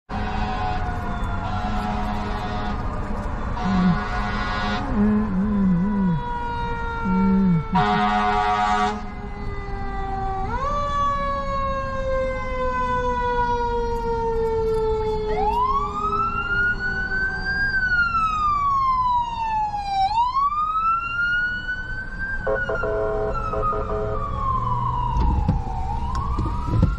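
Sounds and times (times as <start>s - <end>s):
fire engine horn blast: 0.1s - 9.2s, 22.4s - 24.4s
fire engine siren wailing: 0.1s - 26.9s.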